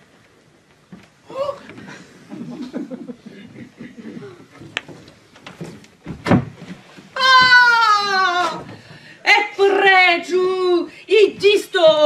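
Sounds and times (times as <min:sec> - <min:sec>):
long falling cry: 0:07.2 - 0:08.7.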